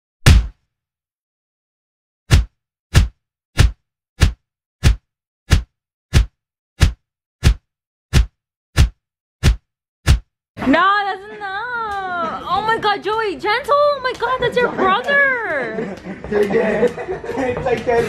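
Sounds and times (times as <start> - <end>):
punches hitting an arm: 0.3 - 0.5, 2.3 - 7.6.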